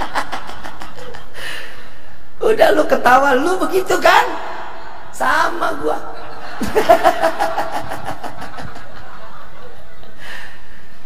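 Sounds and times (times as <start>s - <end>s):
man laughing hard: 0.0s - 1.4s, 6.2s - 10.2s.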